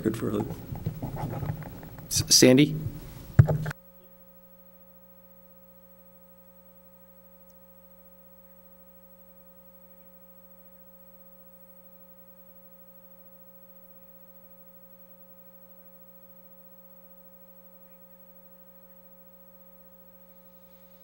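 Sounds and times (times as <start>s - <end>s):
faint electrical hum: 0.0s - 21.0s.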